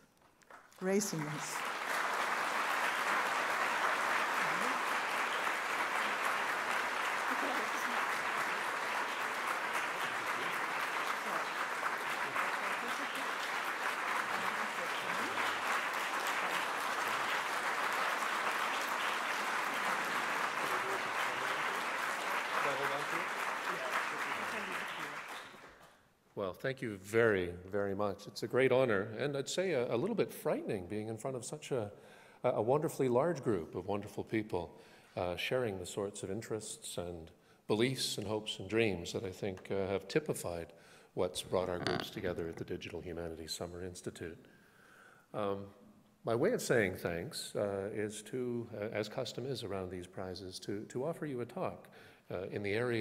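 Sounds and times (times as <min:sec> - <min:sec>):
audience applauding: 0:00.4 - 0:26.0, 0:41.5 - 0:42.2.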